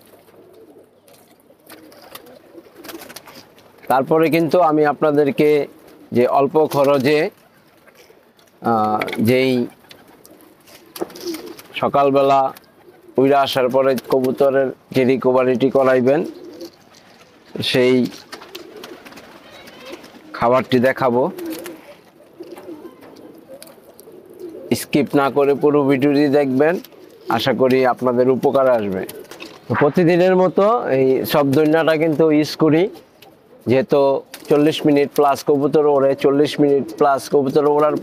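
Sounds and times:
pigeons cooing: 0.0s - 38.0s
wing flutters: 0.1s - 3.8s, 9.6s - 11.8s, 16.2s - 24.7s, 28.8s - 29.8s
faint clicks: 22.5s - 24.1s.

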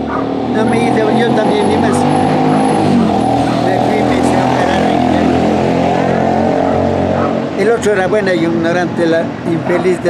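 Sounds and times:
vehicle engine droning: 0.0s - 10.0s.

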